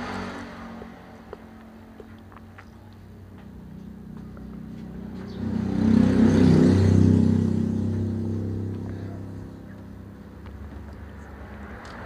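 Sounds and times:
vehicle engine passing by: 0.0s - 1.6s, 3.5s - 12.0s.

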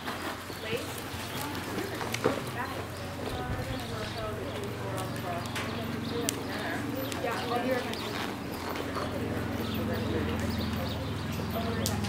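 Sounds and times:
people talking: 0.5s - 12.0s.

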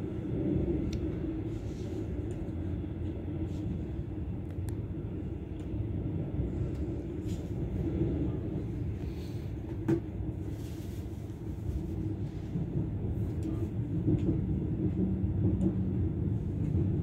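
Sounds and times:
train rumbling: 0.0s - 17.0s.

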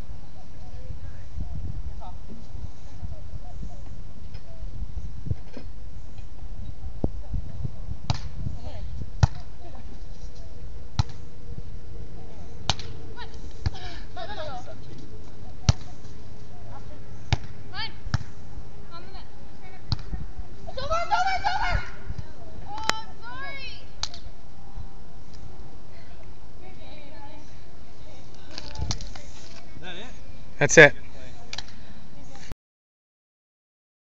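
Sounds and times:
steady low rumble: 0.0s - 32.3s.

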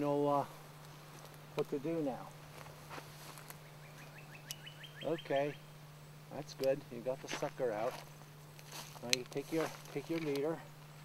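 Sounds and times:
bird chirping: 3.5s - 6.3s.

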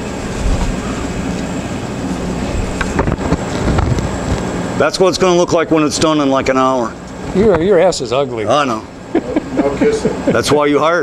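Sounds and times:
laser engraver machine running: 0.0s - 11.0s.

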